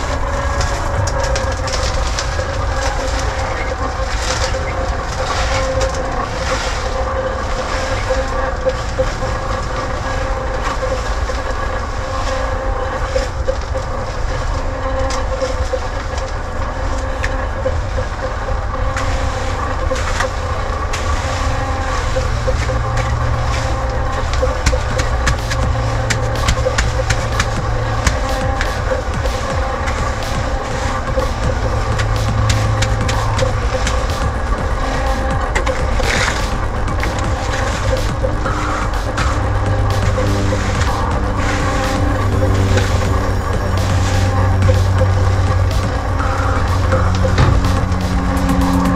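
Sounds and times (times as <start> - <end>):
motor droning: 0.0 - 48.9
wet concrete scraping: 18.9 - 48.9.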